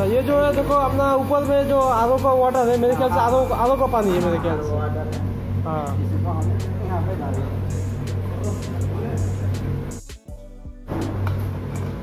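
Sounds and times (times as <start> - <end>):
laundry machinery hum: 0.0 - 10.0.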